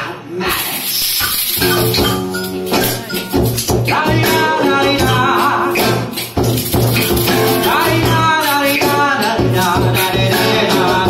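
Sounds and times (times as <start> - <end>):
guitar playing: 1.4 - 11.0
person singing into a microphone: 2.8 - 6.4, 7.3 - 11.0.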